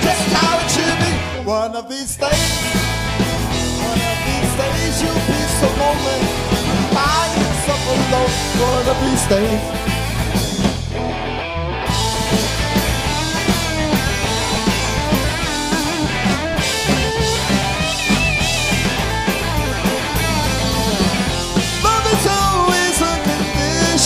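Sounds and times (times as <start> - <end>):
drum kit: 0.0 - 1.6, 2.2 - 11.2, 11.8 - 24.0
electric bass: 0.0 - 24.0
electric guitars: 0.0 - 24.0.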